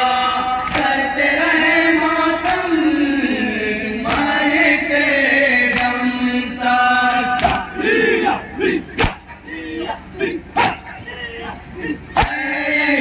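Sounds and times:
men chanting an elegy: 0.0 - 13.0
chest-beating slaps: 0.7 - 1.0, 4.0 - 4.4, 5.7 - 6.0, 7.4 - 7.7, 9.0 - 9.3, 10.6 - 10.8, 12.2 - 12.4.

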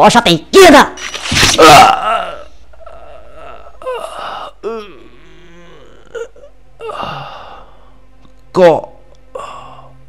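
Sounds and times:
woman moaning in pain: 1.6 - 7.7.

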